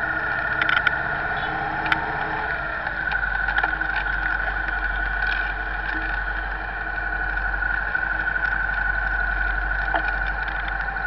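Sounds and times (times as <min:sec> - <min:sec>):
car engine and road noise: 0:00.0 - 0:11.0
high whine: 0:00.0 - 0:11.0.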